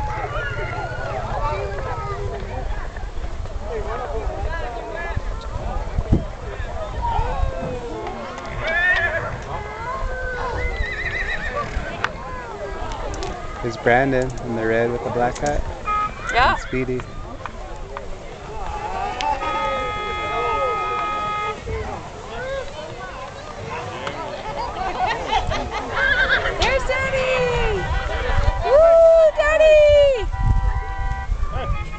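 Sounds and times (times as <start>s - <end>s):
crowd chatter: 0.0s - 31.9s
horse whinnying: 8.6s - 11.9s, 16.2s - 16.8s, 25.9s - 26.6s.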